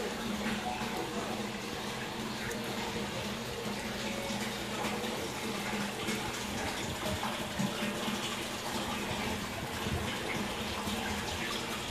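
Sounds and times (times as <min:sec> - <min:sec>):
aquarium water bubbling: 0:00.0 - 0:11.9.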